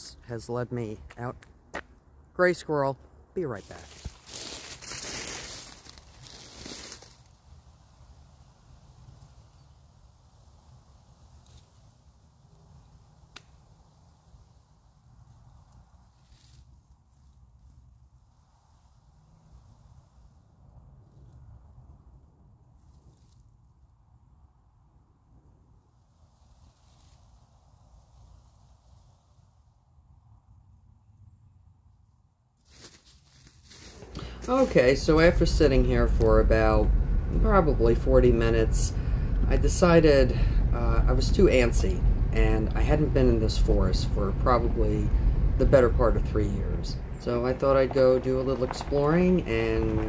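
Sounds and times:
footsteps crunching dry leaves: 0:03.6 - 0:07.3, 0:32.6 - 0:34.7
low rumble: 0:34.0 - 0:50.0.

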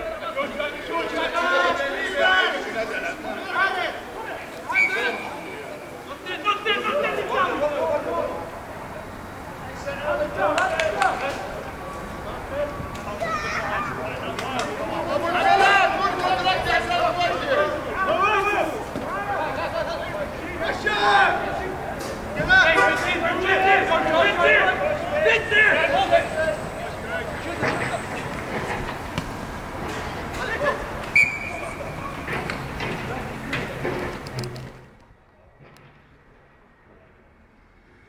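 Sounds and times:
people shouting and calling: 0:00.0 - 0:28.6.

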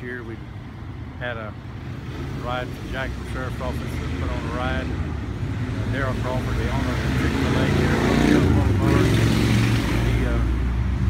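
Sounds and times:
car engine rumbling past: 0:01.5 - 0:11.0.

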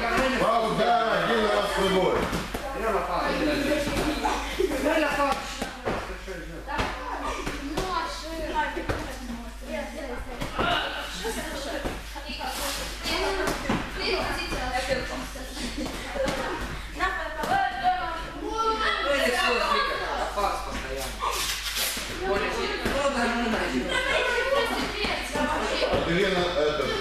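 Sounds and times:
children talking: 0:00.0 - 0:05.8, 0:06.6 - 0:27.0.

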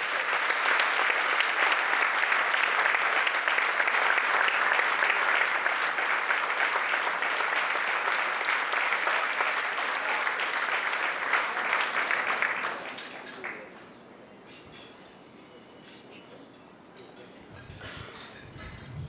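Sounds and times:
audience applauding: 0:00.0 - 0:13.8.

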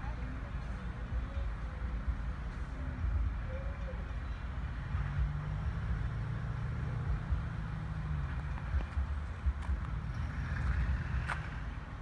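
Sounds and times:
diesel locomotive engine drone: 0:00.0 - 0:12.0.

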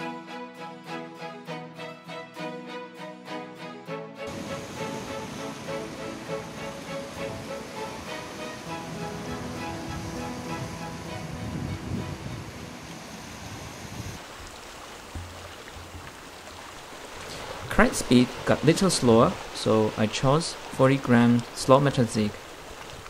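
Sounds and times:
background music: 0:00.0 - 0:13.5
sea surf washing against rocks: 0:04.3 - 0:23.0.

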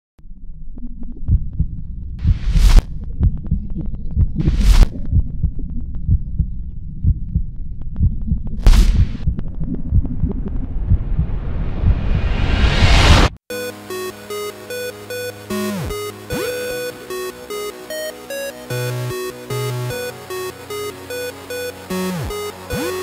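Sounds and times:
heartbeat thumps: 0:01.1 - 0:13.2.

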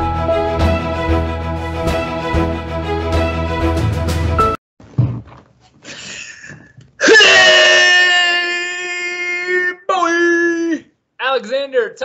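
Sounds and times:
man yelling held shout: 0:07.0 - 0:10.9.

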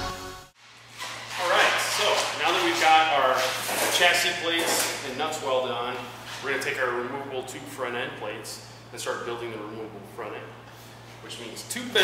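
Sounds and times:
man speaking: 0:11.2 - 0:12.0.

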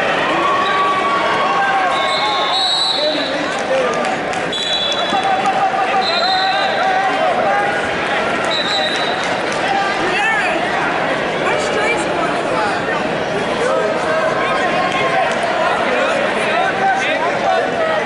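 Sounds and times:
crowd voices talking and calling: 0:00.0 - 0:18.0
referee whistle: 0:01.9 - 0:03.4, 0:04.5 - 0:05.3, 0:05.9 - 0:06.8, 0:08.5 - 0:09.2.

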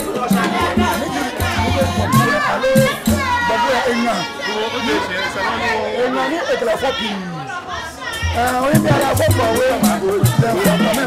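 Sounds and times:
man speaking loudly: 0:00.0 - 0:07.4, 0:08.3 - 0:11.0
voices chattering: 0:00.0 - 0:11.0.

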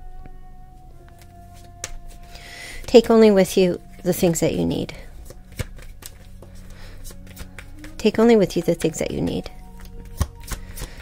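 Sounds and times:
low steady hum: 0:00.0 - 0:11.0
cards being shuffled: 0:01.1 - 0:03.0, 0:05.2 - 0:11.0.

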